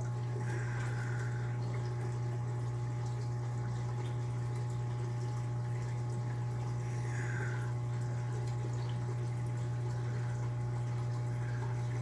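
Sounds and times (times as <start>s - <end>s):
circulating water: 0.0s - 12.0s
low pump hum: 0.0s - 12.0s.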